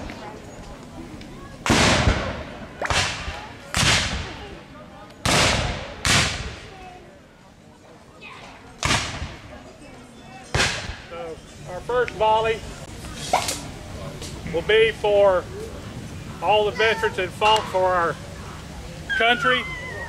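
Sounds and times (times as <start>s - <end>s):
musket shots: 1.6s - 4.3s, 5.2s - 6.6s, 8.8s - 9.4s.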